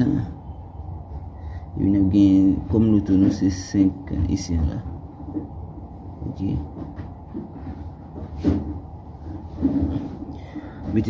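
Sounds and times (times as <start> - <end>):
man speaking: 0.0 - 0.4, 1.8 - 4.9, 6.2 - 6.8.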